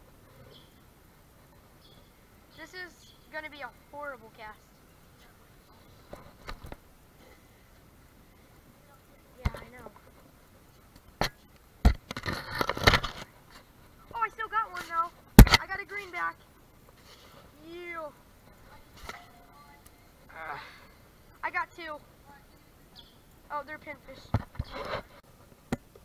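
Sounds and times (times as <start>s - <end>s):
rustling: 0.0s - 26.0s.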